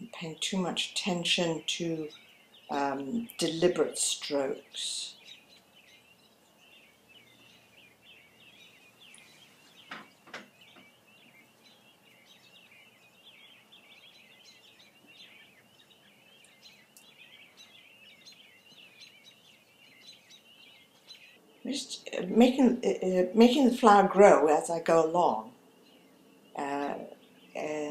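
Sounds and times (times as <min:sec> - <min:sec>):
small birds twittering: 0:00.0 - 0:27.9
soft knocks: 0:09.8 - 0:10.9.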